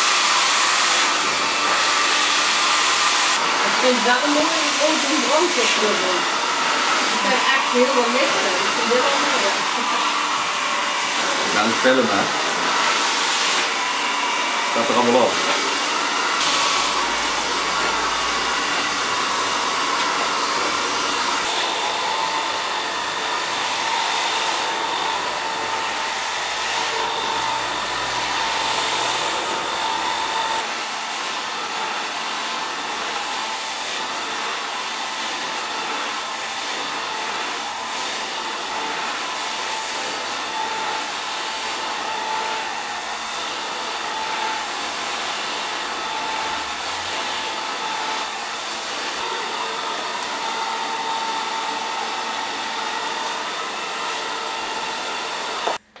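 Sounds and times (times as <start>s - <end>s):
hair dryer running: 0.0s - 56.0s.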